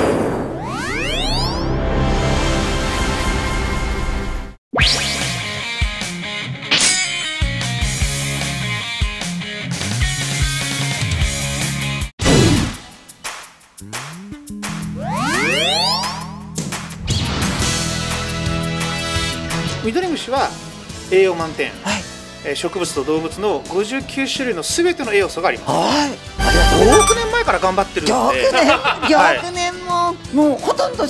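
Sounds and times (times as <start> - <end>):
music bed: 26.4 - 28.8.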